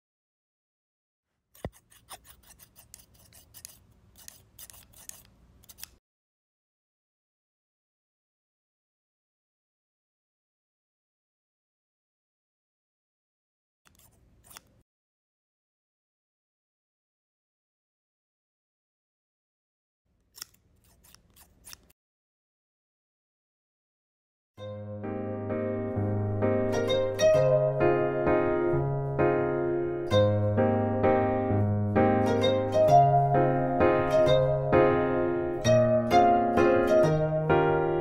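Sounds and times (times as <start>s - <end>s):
scissors snipping hair: 1.6s - 6.0s, 13.9s - 14.8s, 20.2s - 22.0s.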